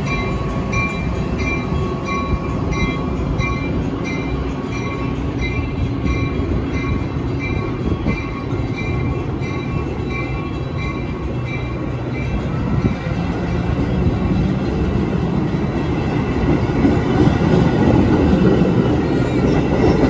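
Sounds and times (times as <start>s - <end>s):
train wheels rumbling on rail: 0.0s - 20.0s.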